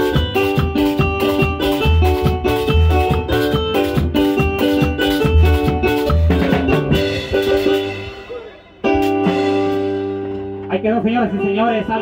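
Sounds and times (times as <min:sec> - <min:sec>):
drums: 0:00.0 - 0:12.0
keyboard chords: 0:00.0 - 0:12.0.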